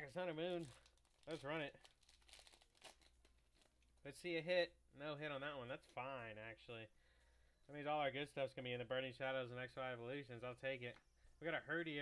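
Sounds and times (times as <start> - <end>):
foil wrapper tearing: 0.4 - 3.8.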